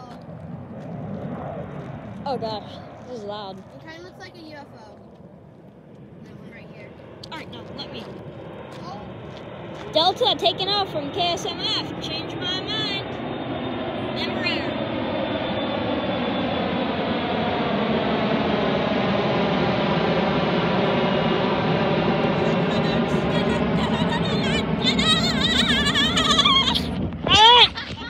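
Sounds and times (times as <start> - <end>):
jet airliner engine noise: 0.0 - 28.0.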